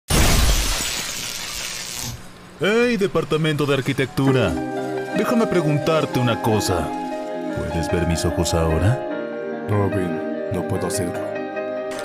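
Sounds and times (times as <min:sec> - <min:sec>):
breaking glass crash: 0:00.1 - 0:02.1.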